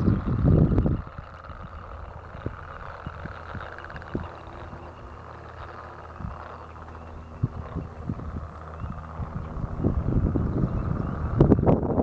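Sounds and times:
frogs croaking: 0:00.0 - 0:11.6
wind buffeting microphone: 0:00.0 - 0:12.0.

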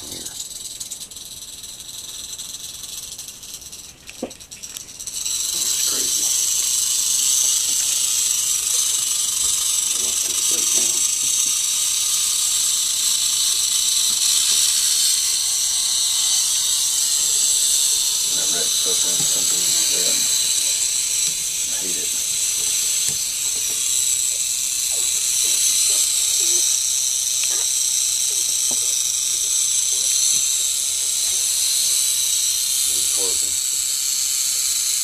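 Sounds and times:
rattlesnake rattling its tail: 0:00.0 - 0:35.0.

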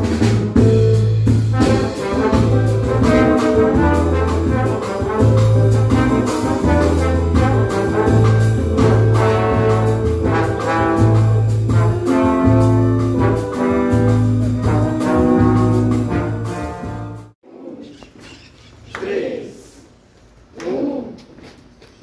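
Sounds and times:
band accompaniment with bass: 0:00.0 - 0:17.4
trombones playing jazzy tune: 0:00.0 - 0:17.4.

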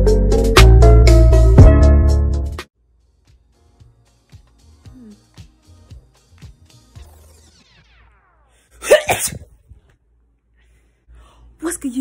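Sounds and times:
woman sneezing: 0:08.8 - 0:09.5.

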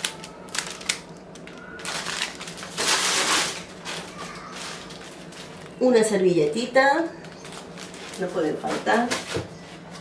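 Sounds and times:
plastic packaging crinkling: 0:00.0 - 0:06.1, 0:07.2 - 0:09.4.

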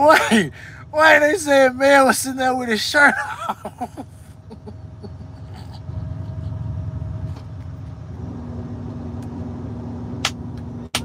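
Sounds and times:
truck engine rumbling: 0:00.0 - 0:11.0.

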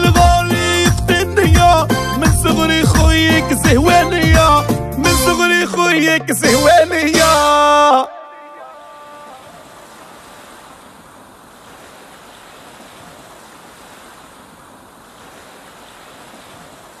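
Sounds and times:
waves breaking on a beach: 0:08.6 - 0:17.0.

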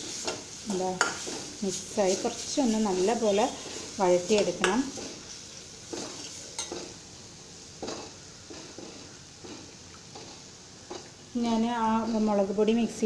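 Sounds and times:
steel spoon scraping a pan: 0:00.0 - 0:07.0
masala sizzling in a pan: 0:00.0 - 0:13.0.

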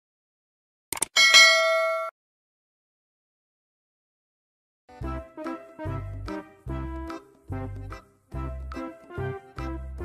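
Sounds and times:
notification bell ding: 0:01.2 - 0:02.1.

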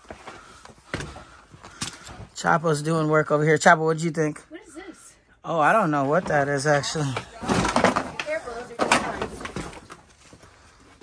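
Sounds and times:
rustling of boxes and clutter: 0:00.0 - 0:02.4, 0:05.9 - 0:11.0.

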